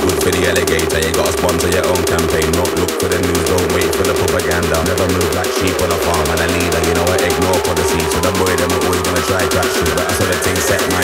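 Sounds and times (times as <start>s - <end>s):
rapid hi-hat pattern: 0.0s - 11.0s
steady bassline: 0.0s - 11.0s
chopped vocal snippets: 3.4s - 11.0s.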